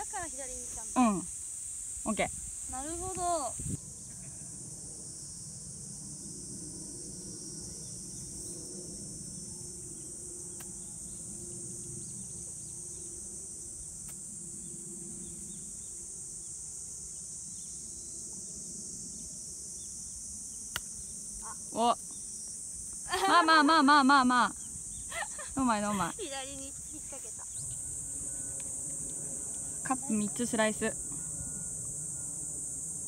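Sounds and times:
insects chirring: 0:00.0 - 0:33.0.

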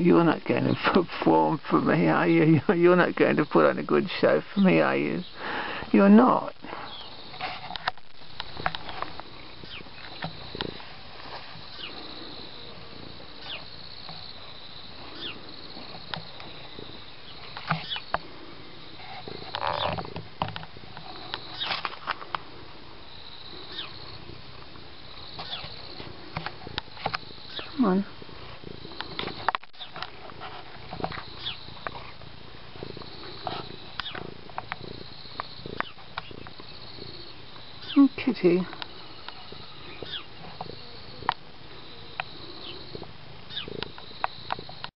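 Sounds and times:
cat purring: 0:00.1 - 0:44.9.

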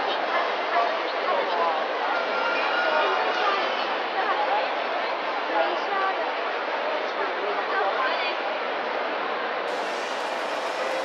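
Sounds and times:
crowd talking indoors: 0:00.0 - 0:11.0.

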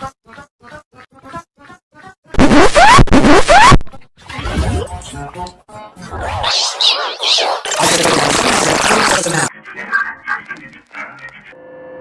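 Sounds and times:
distorted sound effect with rising pitch: 0:02.4 - 0:04.8, 0:06.0 - 0:09.5.

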